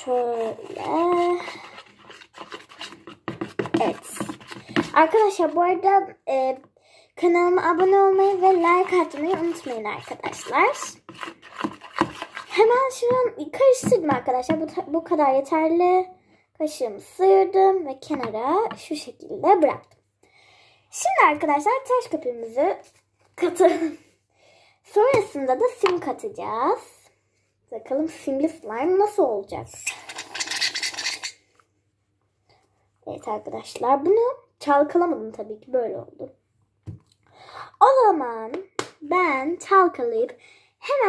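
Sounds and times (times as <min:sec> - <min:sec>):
child's voice: 0:00.0 - 0:01.7, 0:03.6 - 0:11.1, 0:12.5 - 0:19.9, 0:20.9 - 0:24.1, 0:24.9 - 0:27.1, 0:27.7 - 0:29.9, 0:33.0 - 0:36.4, 0:37.8 - 0:41.0
spoon scraping plastic bowl: 0:00.0 - 0:05.8, 0:07.5 - 0:13.3, 0:29.8 - 0:31.4.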